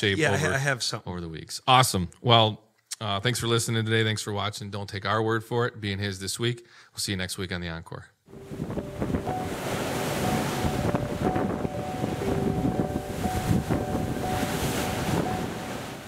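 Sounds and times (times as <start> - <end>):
faint held tones: 8.3 - 15.8
rough sea churning: 8.3 - 16.0
wind rushing: 8.3 - 16.0.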